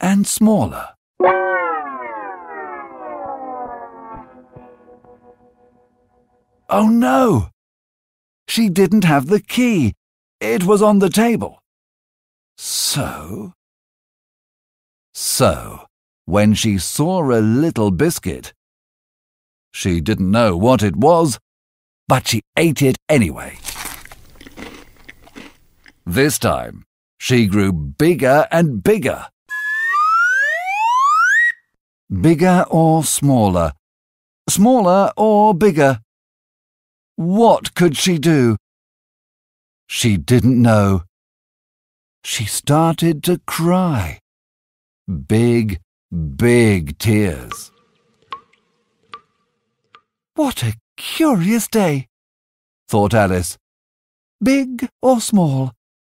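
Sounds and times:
electronic tone gliding down: 0:01.2 - 0:06.4, 0:29.5 - 0:31.6.

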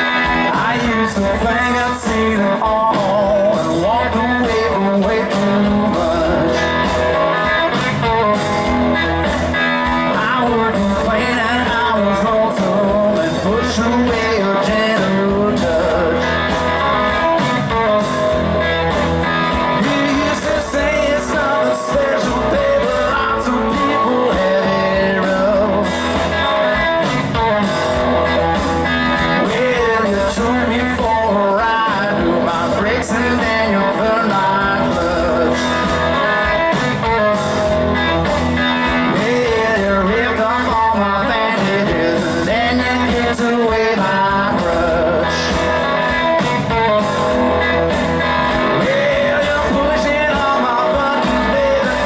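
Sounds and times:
electric guitar: 0:00.0 - 0:52.0
live blues band playing: 0:00.0 - 0:52.0.

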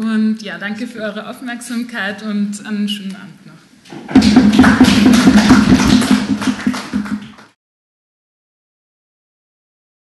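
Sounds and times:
audience applauding: 0:04.1 - 0:07.6.

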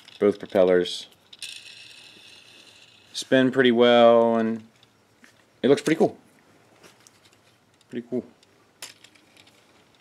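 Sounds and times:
toy rotor whirring: 0:00.0 - 0:03.4.

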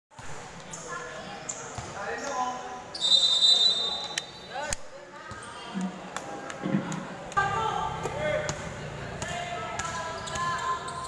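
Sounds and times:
voices of players: 0:00.2 - 0:11.0.

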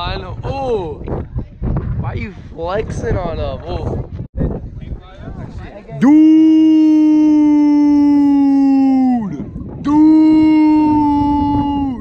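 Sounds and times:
person howling: 0:06.0 - 0:12.0.

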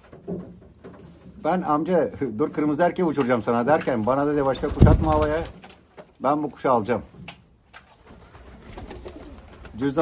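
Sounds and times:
pigeons cooing softly: 0:08.0 - 0:10.0.

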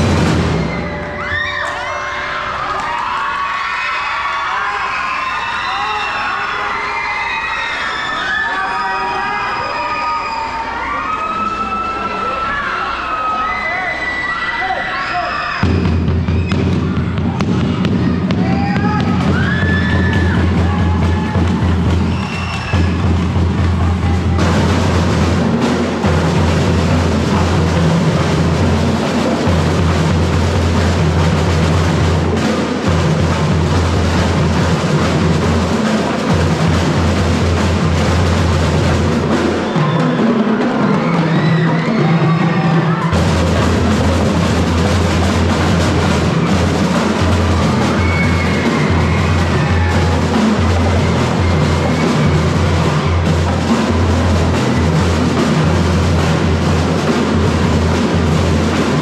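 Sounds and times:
snare and bass drums beating: 0:00.0 - 0:01.5, 0:15.6 - 0:59.0.

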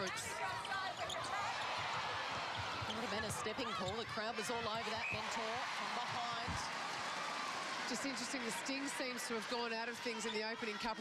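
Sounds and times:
crowd roar: 0:00.0 - 0:11.0.

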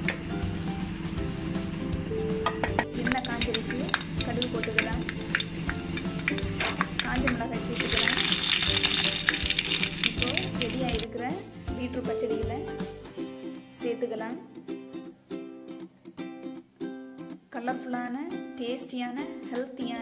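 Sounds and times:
hot oil sizzling: 0:00.0 - 0:11.1
background music: 0:00.0 - 0:20.0.

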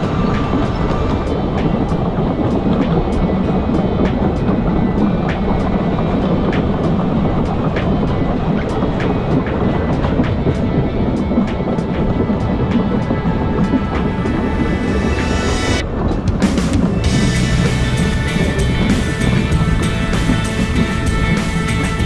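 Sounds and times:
wheels clicking over rail joints: 0:00.0 - 0:14.6, 0:15.8 - 0:22.0
train wheels rumbling on rails: 0:00.0 - 0:22.0.

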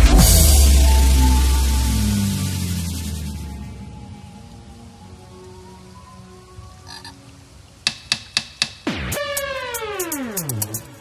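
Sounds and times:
sharp drum hit: 0:00.0 - 0:03.6
frog-like croaking: 0:06.8 - 0:07.2.

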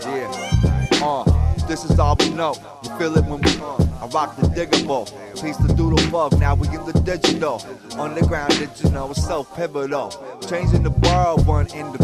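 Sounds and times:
man rapping over a beat: 0:00.0 - 0:12.0.

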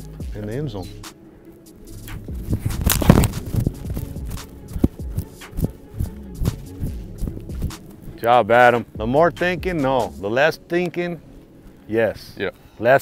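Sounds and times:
music with thumping bass beat: 0:00.0 - 0:01.1, 0:01.9 - 0:08.1, 0:08.9 - 0:10.2
foot kicking football thud: 0:02.1 - 0:07.9.

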